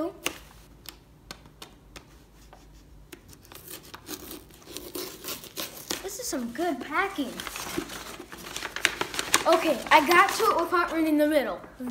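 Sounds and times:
scissors cutting paper: 3.1s - 6.5s
paper crinkling: 3.3s - 11.3s.

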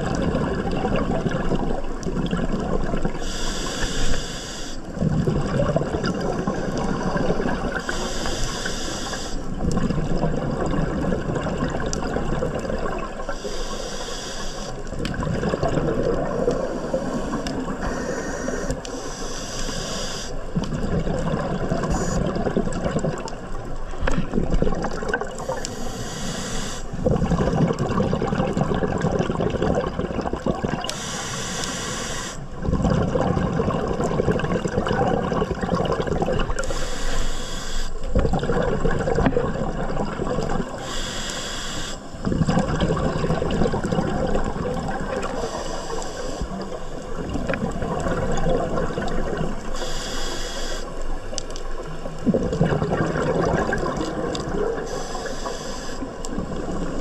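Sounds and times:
exhaust bubbles gushing: 0.0s - 3.2s, 4.9s - 7.8s, 9.5s - 13.3s, 14.9s - 16.8s, 20.5s - 25.7s, 26.9s - 30.9s, 32.5s - 36.7s, 38.1s - 40.8s, 42.2s - 45.4s, 46.6s - 49.8s, 51.2s - 54.9s
diver breathing through regulator: 3.2s - 4.9s, 6.5s - 9.6s, 13.2s - 14.9s, 16.5s - 20.4s, 25.4s - 27.0s, 30.9s - 32.5s, 36.6s - 38.0s, 40.8s - 42.3s, 45.2s - 47.0s, 49.7s - 51.0s, 54.8s - 56.2s.

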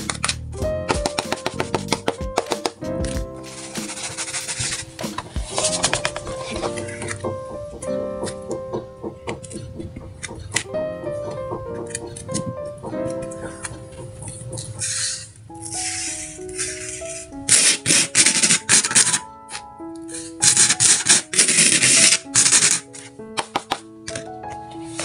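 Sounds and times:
light plucked melody: 0.0s - 14.9s, 15.5s - 21.2s
sand rustling and scraping: 3.4s - 5.8s.

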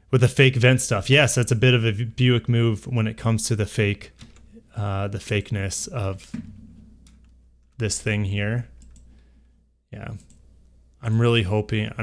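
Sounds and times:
faint computer clicking: 8.7s - 9.2s, 10.0s - 10.5s.

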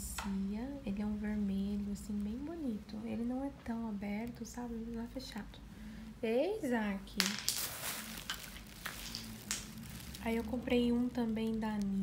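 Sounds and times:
steady low hum: 0.0s - 7.2s
soft rustles: 7.4s - 12.0s.

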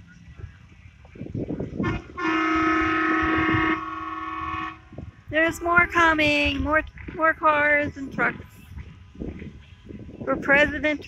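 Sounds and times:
passing traffic: 0.0s - 11.0s
vehicle horn blast: 1.8s - 4.9s.

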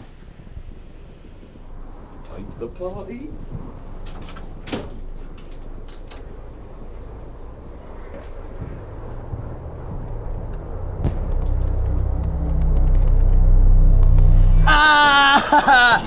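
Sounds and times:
low droning rumble: 0.0s - 16.0s.

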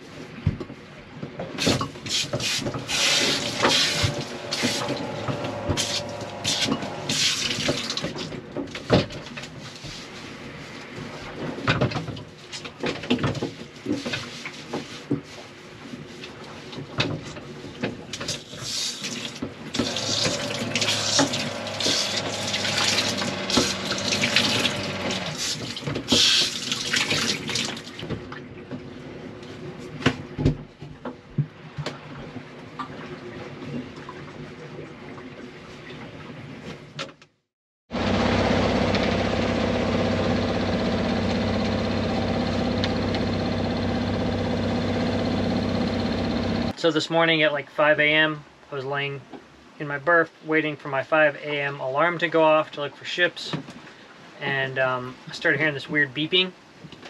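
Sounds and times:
water running and splashing: 2.1s - 8.2s, 18.6s - 28.0s
steady mechanical hum: 2.6s - 7.4s, 19.7s - 25.8s, 38.0s - 46.8s.

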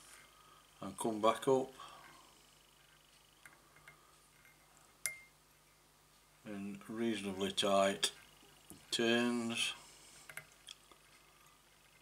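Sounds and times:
sharp click with ring: 5.0s - 5.3s.

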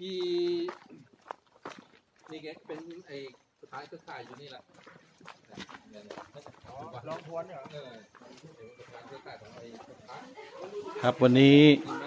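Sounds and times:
footsteps on dirt: 0.0s - 12.0s
man speaking: 5.9s - 10.2s, 10.9s - 12.0s.

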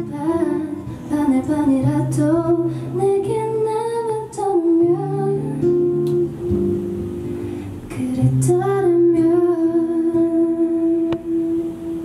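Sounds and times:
woman singing into a microphone: 0.0s - 6.8s, 7.8s - 12.0s
soft acoustic guitar: 0.0s - 12.0s.

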